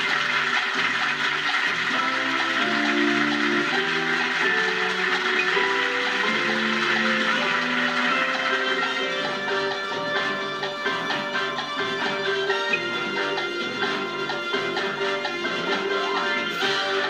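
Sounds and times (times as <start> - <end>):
studio audience applause: 0.0 - 17.0
tv theme music: 0.0 - 17.0.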